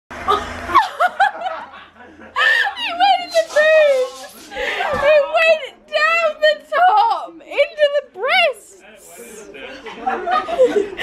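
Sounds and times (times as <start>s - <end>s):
woman laughing hard: 0.3s - 3.2s.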